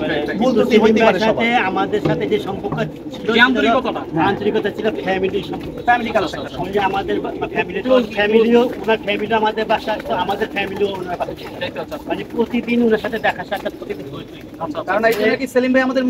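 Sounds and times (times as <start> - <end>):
men talking: 0.0 - 15.6
pigeons cooing: 0.0 - 15.7.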